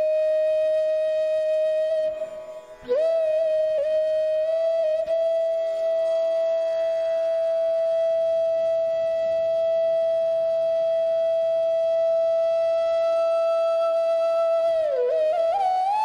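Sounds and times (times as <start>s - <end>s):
flute-like long steady note: 0.0s - 16.0s.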